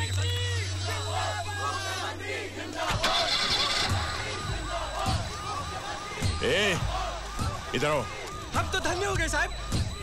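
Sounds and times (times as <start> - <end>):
crowd voices: 0.0 - 10.0
car engine starting: 2.9 - 5.4.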